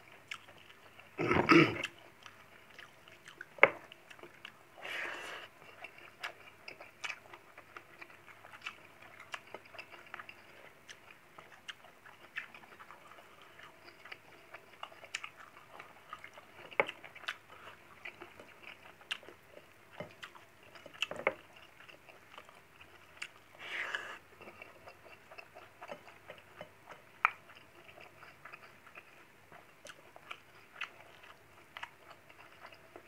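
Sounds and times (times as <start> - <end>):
person chewing with mouth clicks: 0.0 - 33.0.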